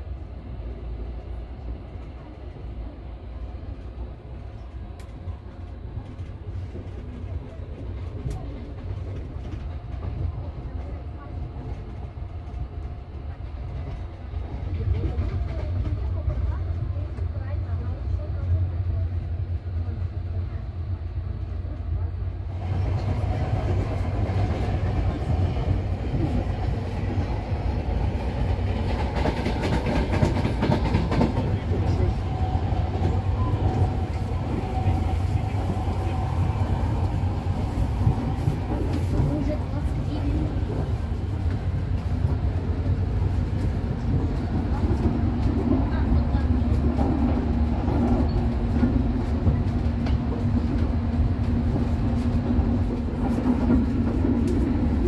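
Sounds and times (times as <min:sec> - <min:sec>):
train wheels rumbling on track: 0:00.0 - 0:55.0.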